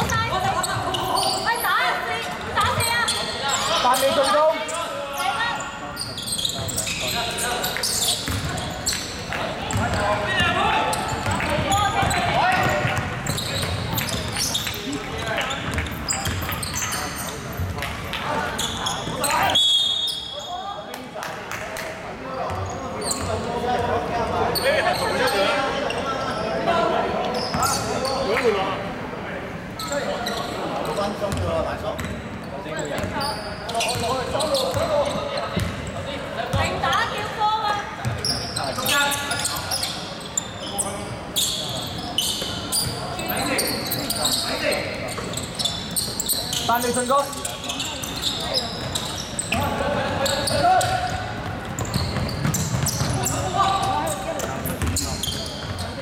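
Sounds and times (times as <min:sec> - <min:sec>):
players' voices and shouts: 0:00.0 - 0:21.2, 0:22.1 - 0:56.0
referee's whistle: 0:19.4 - 0:20.6.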